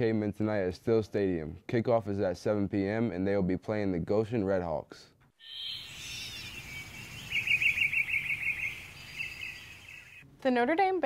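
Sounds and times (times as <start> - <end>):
small bird chirping: 5.4 - 10.2
steady background hiss: 5.4 - 10.4.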